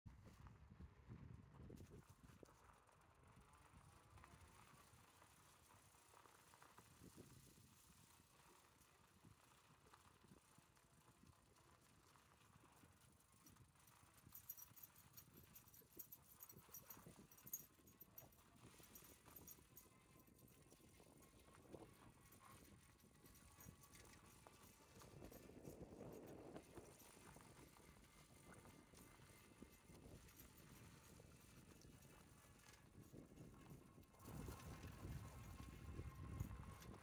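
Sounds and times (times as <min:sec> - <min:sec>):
faint irregular ticks: 0:02.1 - 0:37.0.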